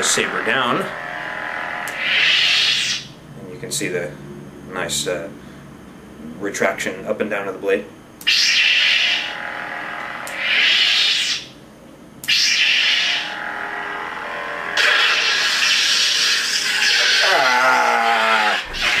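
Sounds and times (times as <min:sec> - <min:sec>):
lightsaber ignition: 0:00.0 - 0:03.2, 0:08.2 - 0:11.6, 0:12.2 - 0:19.0
lightsaber retraction falling in pitch: 0:00.0 - 0:03.2, 0:08.2 - 0:11.6, 0:12.2 - 0:19.0
lightsaber hum: 0:00.0 - 0:05.3, 0:05.9 - 0:19.0.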